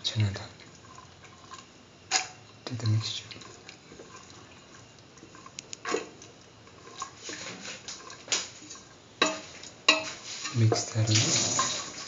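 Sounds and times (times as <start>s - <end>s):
spoon stirring watery mixture: 0.8s - 12.0s
spoon knocking against pot: 9.2s - 10.2s.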